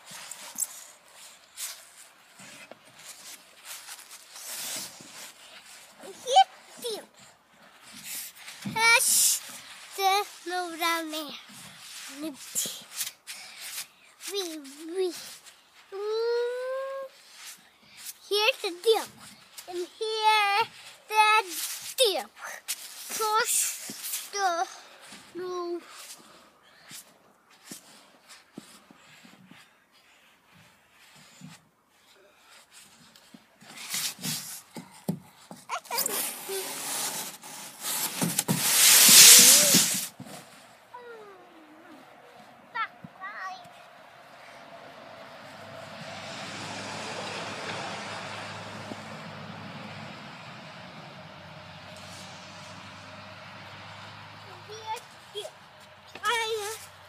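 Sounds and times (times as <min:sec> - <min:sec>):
sliding swish through snow: 0:07.8 - 0:26.3, 0:35.8 - 0:41.4, 0:44.2 - 0:50.6.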